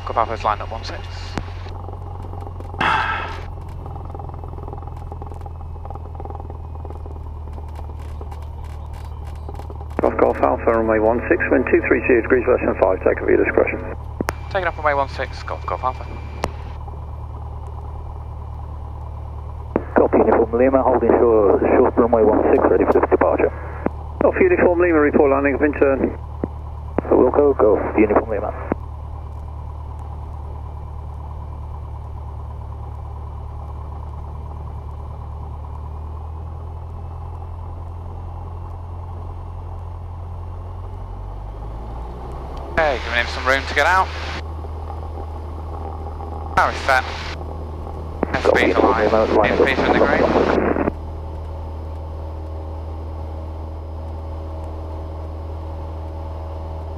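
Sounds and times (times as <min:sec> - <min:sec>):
piston engine low drone: 0:00.0 - 0:56.9
radio hiss: 0:10.0 - 0:16.8, 0:19.8 - 0:26.2, 0:27.0 - 0:28.8, 0:42.8 - 0:44.4, 0:46.6 - 0:47.4, 0:48.2 - 0:50.9
intercom hiss: 0:46.6 - 0:47.4, 0:48.2 - 0:50.9.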